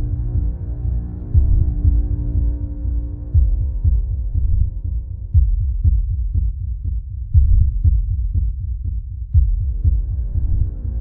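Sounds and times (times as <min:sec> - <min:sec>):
held music drone: 0:00.0 - 0:05.3
heartbeat thuds: 0:00.0 - 0:11.0.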